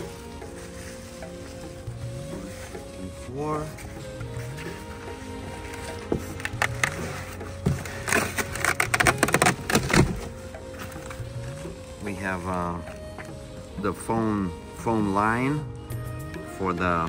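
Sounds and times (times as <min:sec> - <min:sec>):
cardboard box scraping: 0:00.0 - 0:12.3
foam packing crackling: 0:00.0 - 0:15.6
background music with bass: 0:00.0 - 0:17.0.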